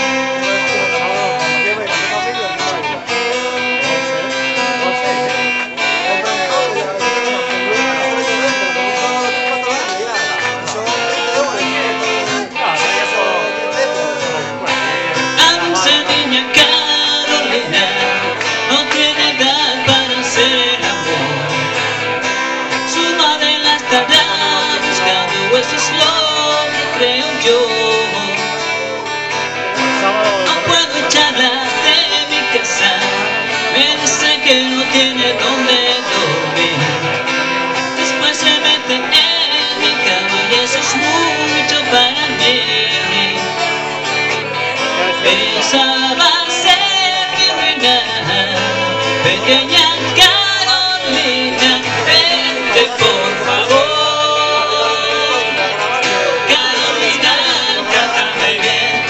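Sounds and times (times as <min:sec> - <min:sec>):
two guitars strumming and picking: 0:00.0 - 0:59.0.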